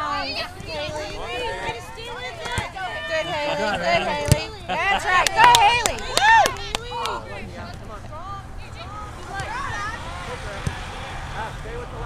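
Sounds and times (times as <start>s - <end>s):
outdoor background noise: 0.0s - 12.0s
people calling and chattering: 0.0s - 12.0s
loud shout: 5.0s - 7.3s.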